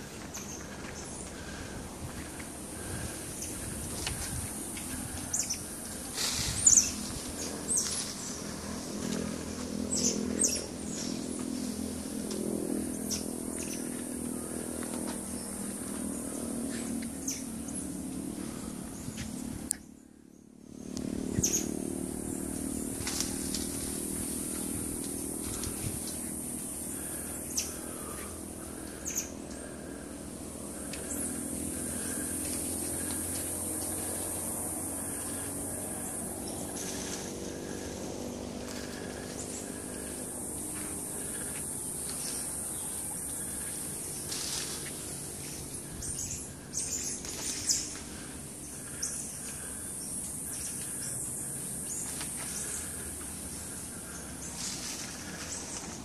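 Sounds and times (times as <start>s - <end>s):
high insect drone: 0.0s - 56.0s
low engine hum: 0.0s - 56.0s.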